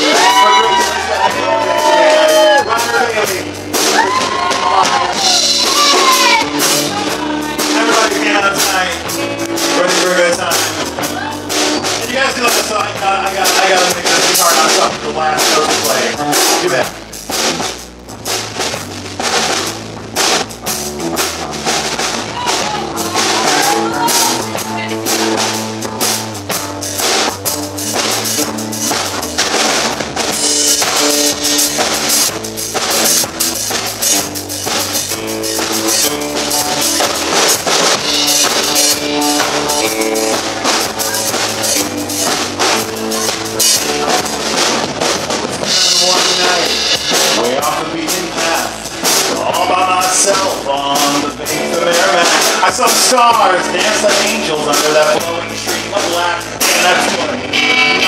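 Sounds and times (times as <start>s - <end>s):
drum kit beat: 0.0s - 58.0s
live rock band playing: 0.0s - 58.0s.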